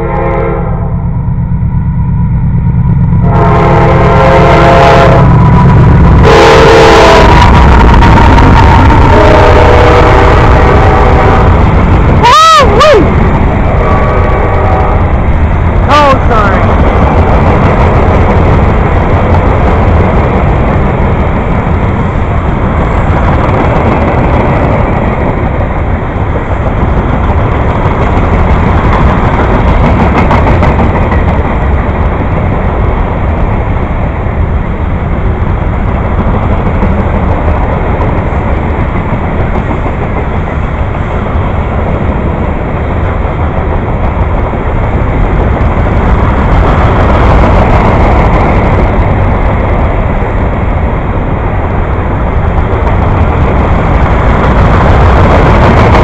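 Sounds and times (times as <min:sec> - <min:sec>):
train wheels rumbling on rails: 0:00.0 - 0:56.0.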